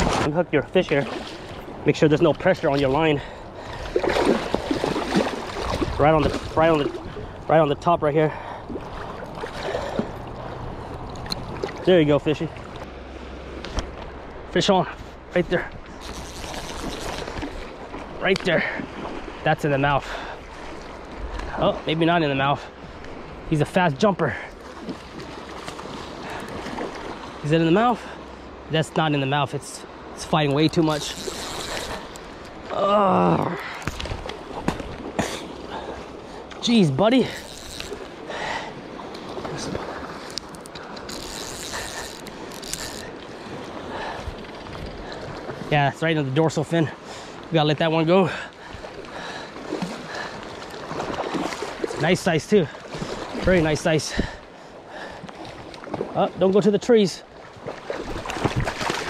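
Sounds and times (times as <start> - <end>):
river current rushing: 0.9 - 7.5, 8.3 - 46.4
fishing reel drag ratcheting: 16.0 - 17.4, 30.7 - 32.3, 37.2 - 38.1, 40.3 - 43.1
sleeve rubbing on microphone: 30.9 - 32.1.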